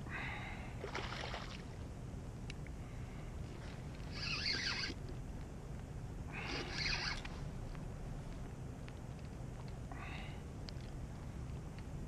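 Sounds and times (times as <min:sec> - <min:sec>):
wind and water wash: 0:00.0 - 0:03.0
fishing reel drag buzzing: 0:04.1 - 0:05.0, 0:06.4 - 0:07.3.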